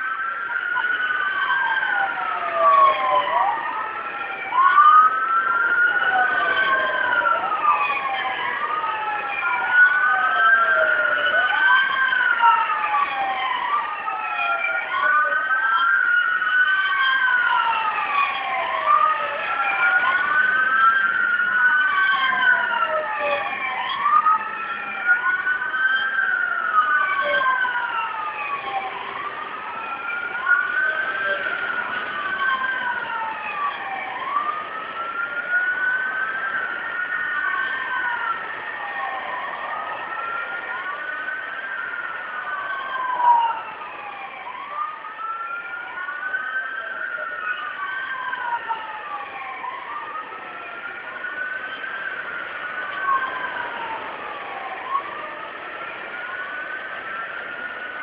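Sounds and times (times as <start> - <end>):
police sirens wailing: 0.0 - 58.0.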